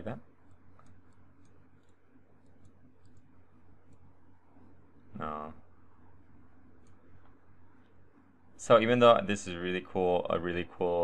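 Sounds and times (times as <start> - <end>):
low steady hum: 0.0 - 11.0
computer mouse clicks: 0.4 - 4.1, 6.8 - 8.0.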